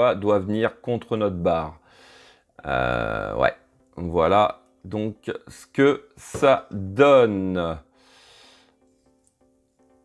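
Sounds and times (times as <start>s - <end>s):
faint guitar music: 2.6s - 10.0s.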